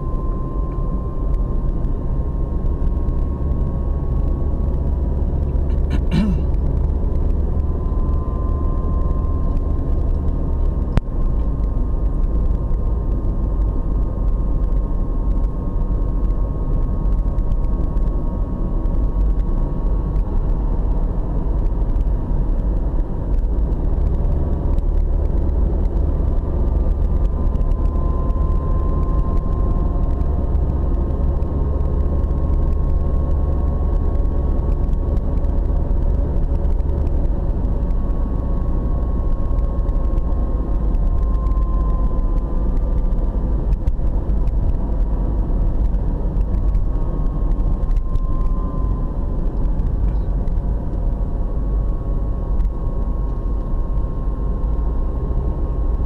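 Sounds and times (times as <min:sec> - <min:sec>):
faint whining tones: 0:00.0 - 0:56.0
tyre and engine rumble inside car: 0:00.0 - 0:56.0.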